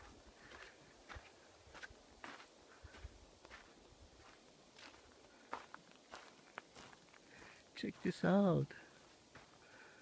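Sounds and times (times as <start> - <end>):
background hiss: 0.0 - 10.0
faint footsteps: 0.0 - 10.0.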